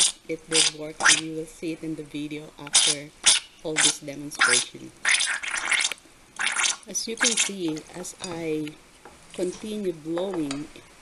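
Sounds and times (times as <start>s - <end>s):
blowing through a straw: 0.0s - 1.4s, 2.7s - 7.6s.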